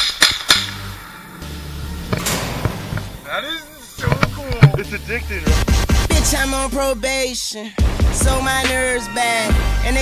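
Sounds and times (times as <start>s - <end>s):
hip-hop backing track: 0.0s - 10.0s.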